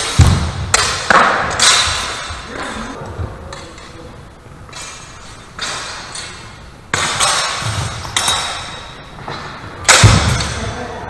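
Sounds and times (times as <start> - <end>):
steel swords clashing: 0.0 - 4.0, 4.7 - 9.1.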